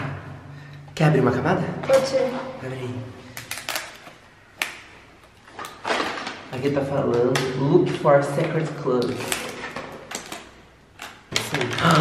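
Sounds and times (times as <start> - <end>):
plastic wrapping clicks and crackles: 3.3 - 12.0.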